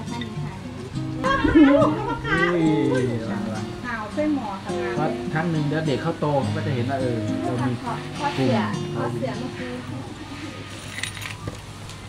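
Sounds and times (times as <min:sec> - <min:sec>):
bottles and glasses clinking: 0:10.7 - 0:11.6.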